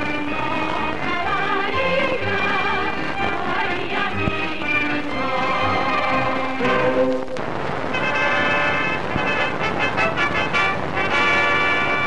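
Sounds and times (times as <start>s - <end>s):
soundtrack hiss: 0.0s - 12.0s.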